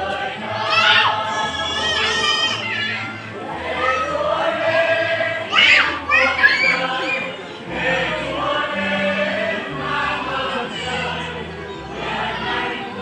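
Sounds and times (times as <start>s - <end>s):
audience chatter: 0.0s - 13.0s
choir singing over loudspeakers: 0.0s - 13.0s.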